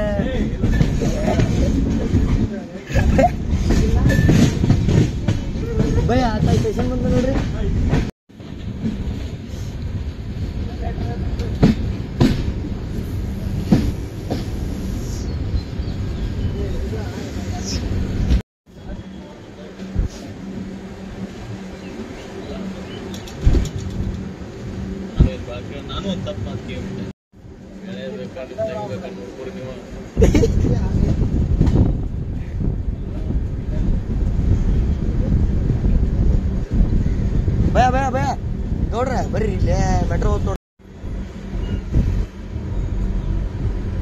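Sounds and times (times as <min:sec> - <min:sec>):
train wheels rumbling on rail: 0:00.0 - 0:44.0
heavy low thump: 0:31.0 - 0:33.2
rushing air: 0:40.8 - 0:44.0.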